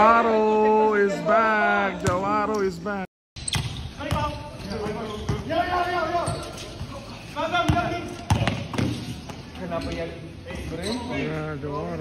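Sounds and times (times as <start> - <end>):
basketball bouncing on court: 3.4 - 5.5, 7.6 - 9.5.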